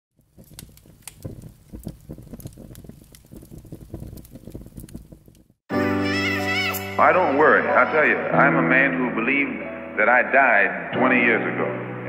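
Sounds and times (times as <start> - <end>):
record surface crackles and pops: 0.1 - 5.7
music with held chord: 5.7 - 12.0.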